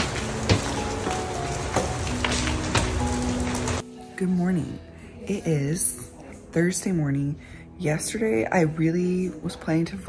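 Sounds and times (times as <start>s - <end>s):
heavy rain pouring: 0.0s - 3.8s
faint background music: 0.0s - 10.0s.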